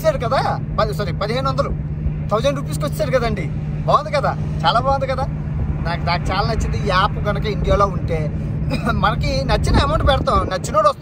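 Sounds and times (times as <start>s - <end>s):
car interior rumble: 0.0s - 11.0s
man talking: 0.0s - 11.0s.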